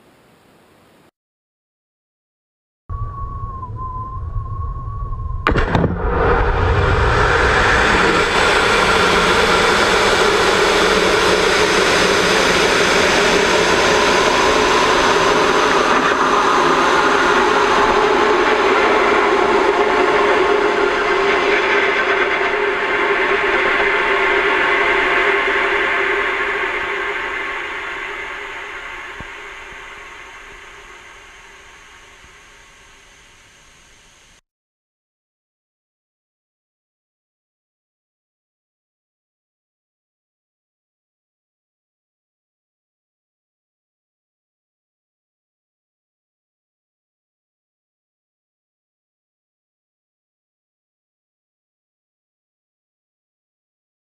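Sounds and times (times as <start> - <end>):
steady high tone: 2.9 - 34.4
rocket motor roaring: 4.3 - 34.4.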